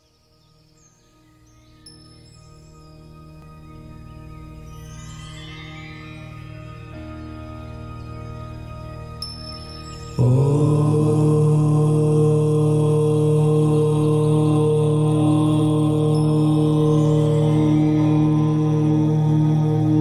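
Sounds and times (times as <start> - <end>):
chanted mantra drone: 3.7 - 20.0.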